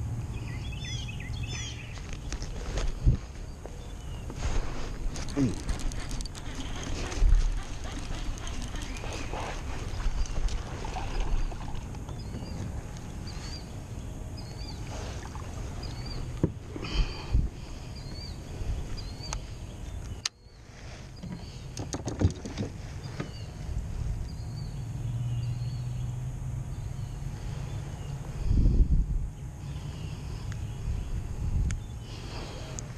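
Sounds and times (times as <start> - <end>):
water against kayak hull: 5.1 - 12.8.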